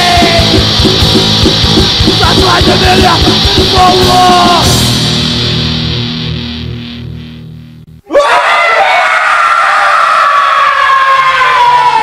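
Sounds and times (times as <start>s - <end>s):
long scream: 8.0s - 12.0s.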